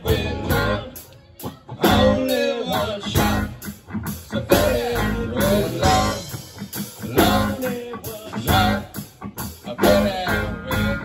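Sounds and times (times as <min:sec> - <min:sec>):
drum kit: 0:00.0 - 0:11.0
electric bass: 0:00.0 - 0:11.0
electric guitar: 0:00.0 - 0:11.0
lead singer singing: 0:00.0 - 0:11.0.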